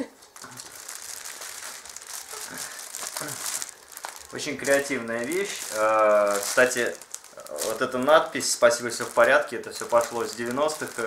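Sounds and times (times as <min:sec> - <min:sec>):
plastic bag crinkling: 0:00.1 - 0:11.0.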